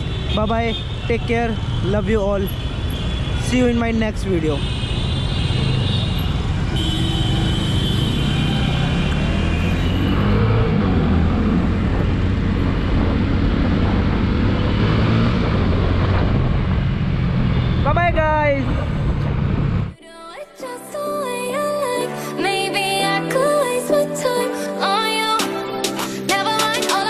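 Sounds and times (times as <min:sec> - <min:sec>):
city traffic: 0:00.0 - 0:20.0
motorcycle engine: 0:04.6 - 0:20.0
wind noise: 0:10.8 - 0:20.0.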